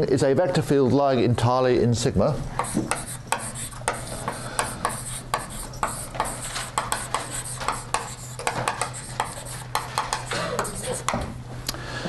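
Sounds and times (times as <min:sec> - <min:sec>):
chalk scratching on blackboard: 0:02.6 - 0:11.2.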